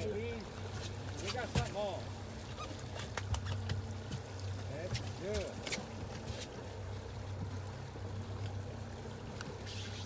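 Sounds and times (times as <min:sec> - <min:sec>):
outboard motor humming: 0:00.0 - 0:10.0.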